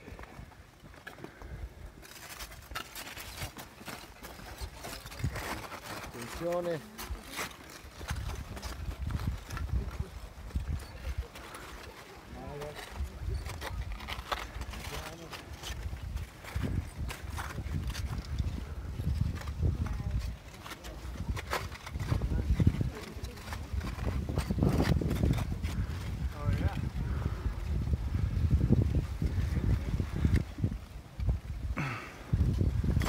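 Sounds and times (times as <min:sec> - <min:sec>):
lava rock crunching and clinking: 0:00.0 - 0:33.0
wind rumbling on microphone: 0:07.1 - 0:11.7, 0:12.3 - 0:33.0.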